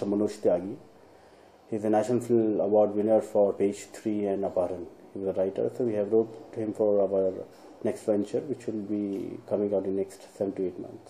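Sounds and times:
man speaking: 0.0s - 0.9s, 1.7s - 11.0s.

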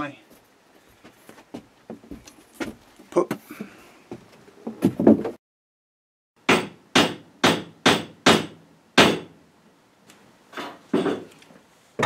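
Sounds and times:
sharp knocks in van: 6.5s - 9.3s.

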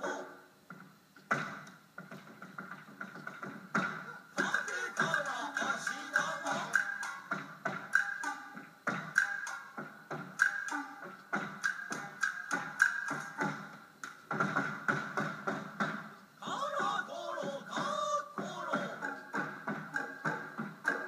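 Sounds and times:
singers chanting: 4.3s - 7.3s, 16.4s - 21.0s.

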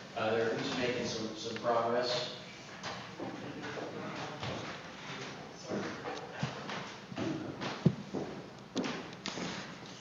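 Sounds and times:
footsteps on wooden floor: 3.2s - 9.7s.

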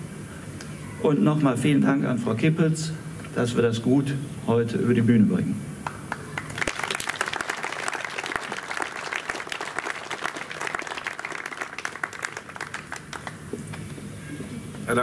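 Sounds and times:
audience applauding: 5.8s - 13.9s.

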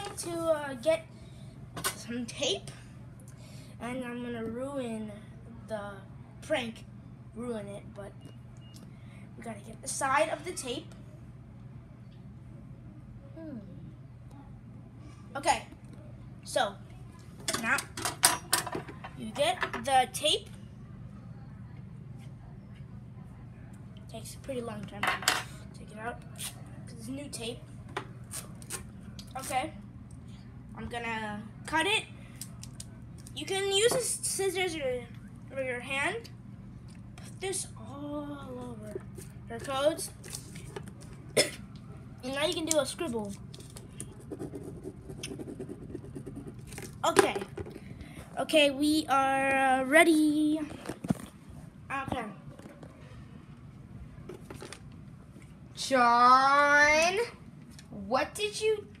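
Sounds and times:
pen scribbling on paper: 44.0s - 46.7s.

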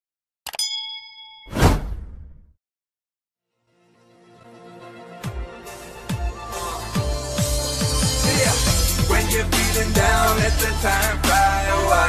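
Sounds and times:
bell-like ding: 0.5s - 1.6s.

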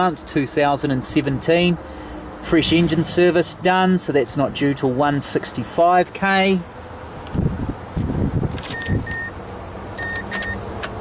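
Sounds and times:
low rumbling thumps: 2.3s - 4.0s, 7.2s - 8.6s
car warning chime beeps: 8.7s - 9.4s, 10.0s - 10.6s.

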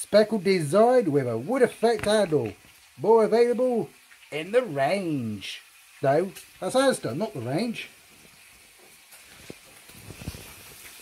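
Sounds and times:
bacon sizzling in a frying pan: 0.0s - 11.0s
soft pops and taps: 1.9s - 2.8s.

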